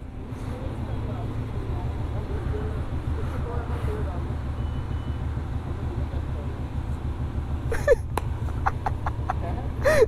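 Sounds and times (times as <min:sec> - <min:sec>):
vehicles idling and moving: 0:00.0 - 0:10.0.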